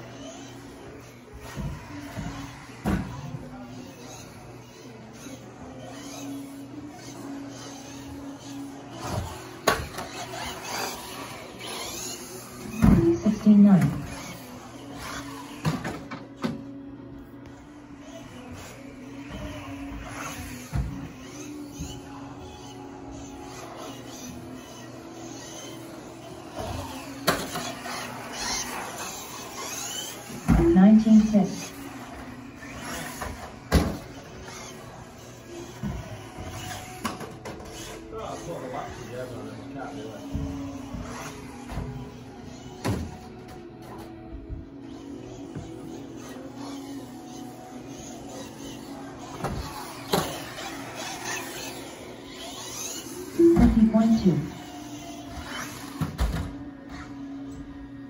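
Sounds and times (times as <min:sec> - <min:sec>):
electric motor whine: 0:00.0 - 0:58.0.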